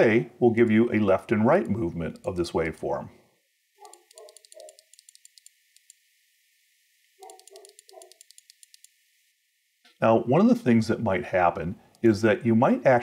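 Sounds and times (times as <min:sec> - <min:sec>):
rapid computer mouse clicks: 0:01.6 - 0:02.4, 0:03.8 - 0:06.0, 0:07.2 - 0:09.0.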